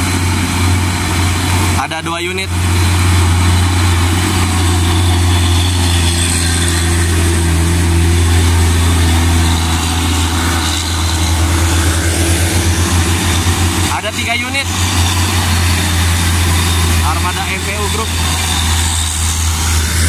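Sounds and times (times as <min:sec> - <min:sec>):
truck diesel engine droning: 0:00.0 - 0:20.0
tyres hissing on wet road: 0:00.0 - 0:20.0.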